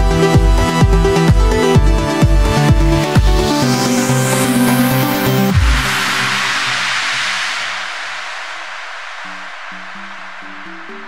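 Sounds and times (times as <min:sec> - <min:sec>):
electronic music: 0:00.0 - 0:11.0
hissing white-noise sweep: 0:03.5 - 0:11.0
heavy hit: 0:05.5 - 0:11.0.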